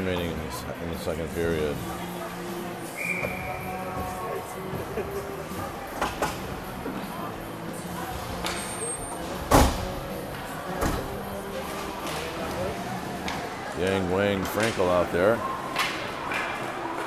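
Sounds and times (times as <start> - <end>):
background music: 0.0 - 17.0
voices: 0.0 - 17.0.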